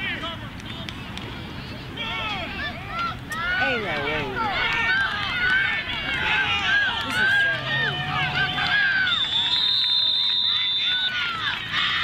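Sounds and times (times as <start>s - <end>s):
crowd yelling and cheering: 0.0s - 12.0s
referee's whistle blast: 9.2s - 11.2s.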